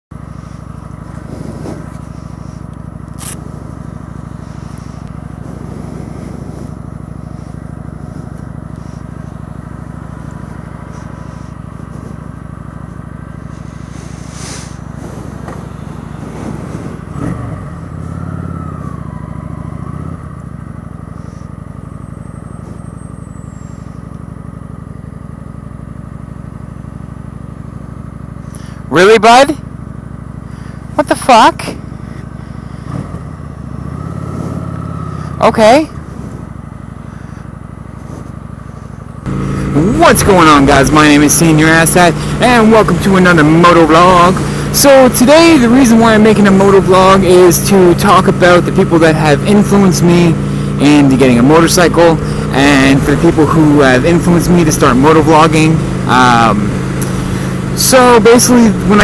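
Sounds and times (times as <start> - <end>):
motorcycle engine idling: 0.1 - 59.0
motorcycle pulling away: 0.2 - 59.0.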